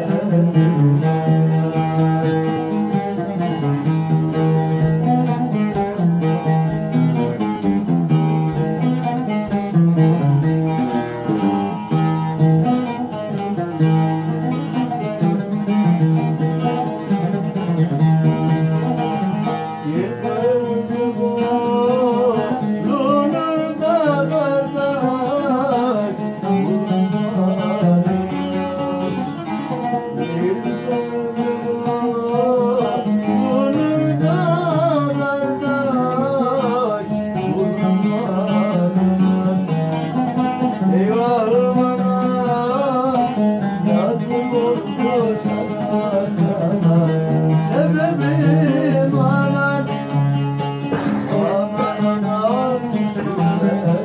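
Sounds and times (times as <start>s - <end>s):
man singing ornamented melody: 0.0s - 11.0s, 12.4s - 54.0s
plucked lutes playing folk song: 0.0s - 54.0s.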